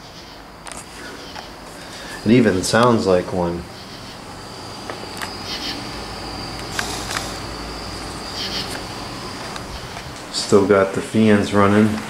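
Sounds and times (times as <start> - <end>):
crickets chirping: 0.0 - 12.0
low fan hum: 0.0 - 12.0.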